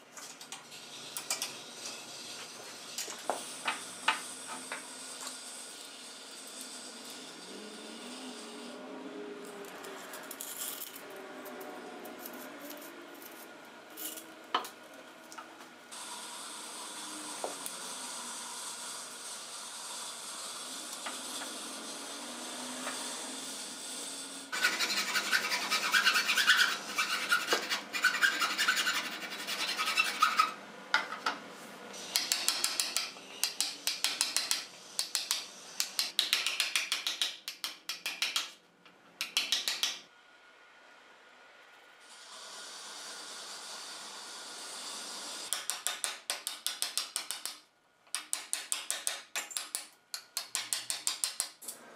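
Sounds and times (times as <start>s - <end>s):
hand tool scraping wood: 24.5s - 30.6s.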